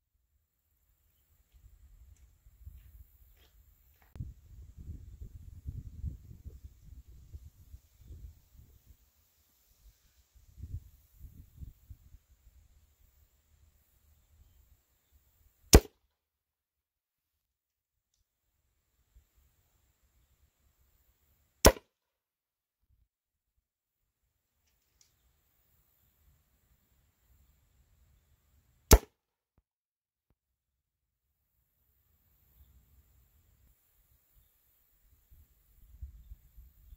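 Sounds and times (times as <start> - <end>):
wind buffeting microphone: 4.2 - 8.9
air rifle shot: 15.8 - 16.0, 21.6 - 21.9, 28.9 - 29.1.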